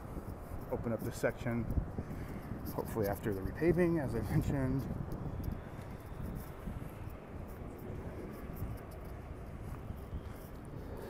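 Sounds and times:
faint ticks: 0:04.8 - 0:11.0.

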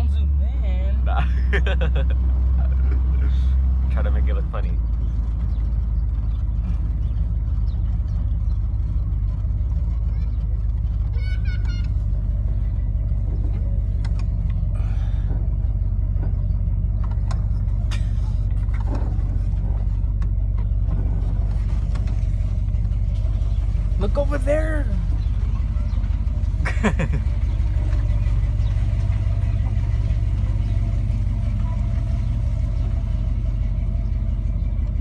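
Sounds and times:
car engine running heard from inside: 0:00.0 - 0:35.0.

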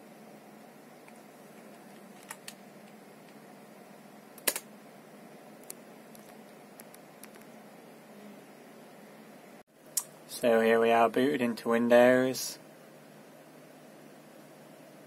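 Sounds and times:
computer fans humming: 0:00.0 - 0:15.0
keyboard clicks: 0:04.4 - 0:04.6, 0:05.6 - 0:07.5.

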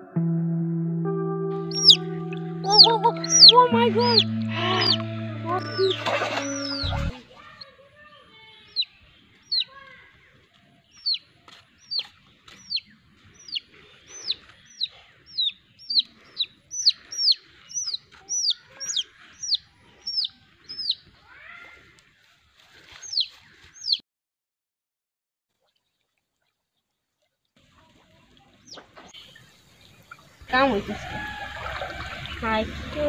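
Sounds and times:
chick peeping: 0:01.6 - 0:07.1, 0:08.7 - 0:09.7, 0:10.8 - 0:21.2, 0:23.0 - 0:24.0.

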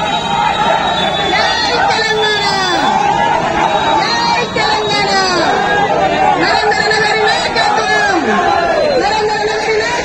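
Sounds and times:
crowd of men talking: 0:00.0 - 0:10.0.

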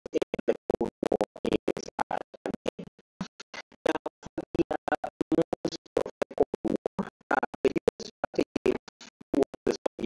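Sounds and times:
garbled stuttering voice fragments: 0:03.6 - 0:10.0.

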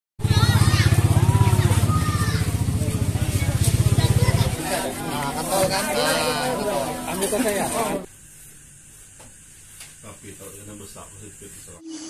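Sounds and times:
van engine idling: 0:00.2 - 0:08.1
voices talking: 0:00.2 - 0:08.1.

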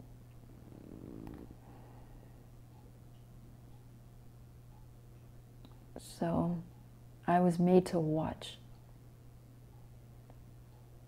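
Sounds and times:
steady low hum: 0:00.0 - 0:11.0
soft low sound with faint click: 0:02.6 - 0:03.9, 0:04.7 - 0:06.0, 0:09.6 - 0:11.0.

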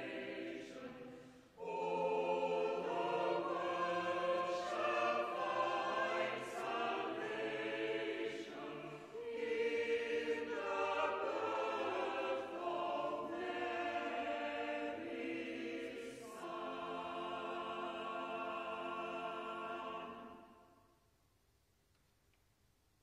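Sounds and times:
choir singing a carol: 0:00.0 - 0:21.0.

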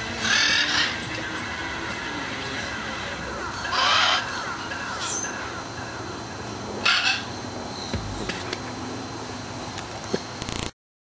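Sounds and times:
outdoor background: 0:00.0 - 0:10.8
brief low thump: 0:07.9 - 0:08.5.

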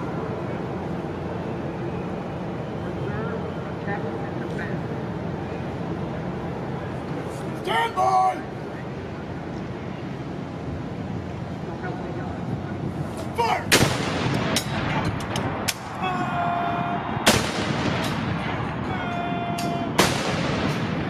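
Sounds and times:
cannon shots with rolling echo: 0:13.7 - 0:14.9, 0:17.2 - 0:18.7, 0:19.9 - 0:21.0.

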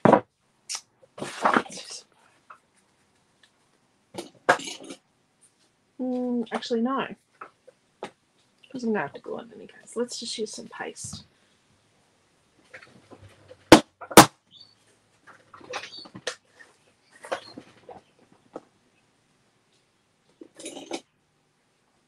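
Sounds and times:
plastic tub scraping and rustling: 0:01.2 - 0:02.0.

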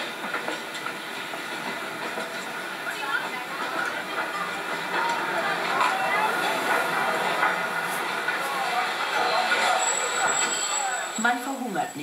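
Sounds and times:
train rolling slowly: 0:00.0 - 0:12.0
high-pitched train squeal: 0:08.5 - 0:11.6.

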